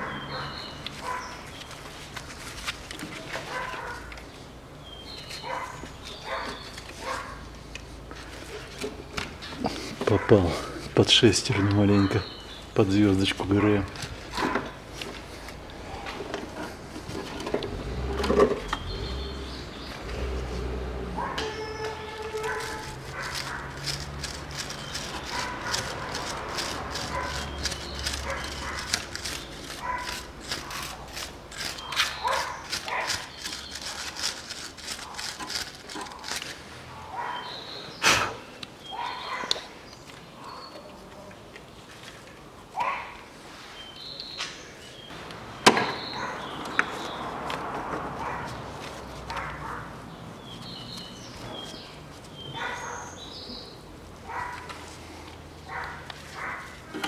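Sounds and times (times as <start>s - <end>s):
dog barking: 0.0s - 1.4s, 3.5s - 4.1s, 5.4s - 7.4s, 21.2s - 21.6s, 22.4s - 23.7s, 25.3s - 26.2s, 27.1s - 27.5s, 28.2s - 28.9s, 29.8s - 30.8s, 32.2s - 33.2s, 36.9s - 37.6s, 38.9s - 39.7s, 42.8s - 43.2s, 46.1s - 46.5s, 48.2s - 48.6s, 49.3s - 49.9s, 52.5s - 53.2s, 54.2s - 54.7s, 55.7s - 56.7s.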